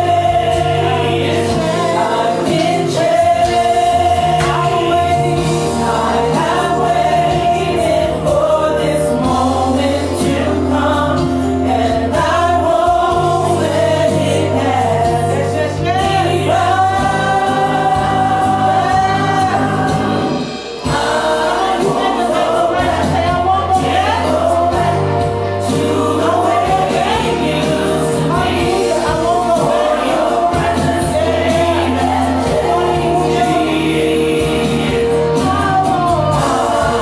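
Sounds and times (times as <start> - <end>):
group singing gospel worship: 0.0 - 37.0
instrumental accompaniment: 0.0 - 37.0.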